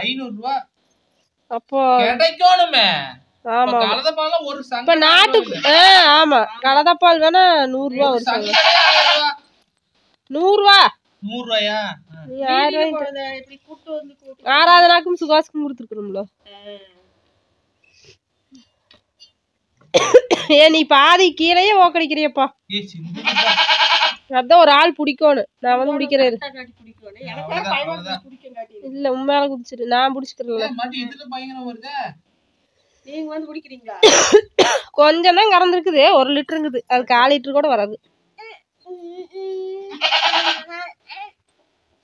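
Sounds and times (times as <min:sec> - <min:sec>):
goat bleating: 0:05.4 - 0:06.1, 0:08.3 - 0:09.4, 0:23.0 - 0:24.2, 0:27.2 - 0:28.2, 0:39.9 - 0:41.4.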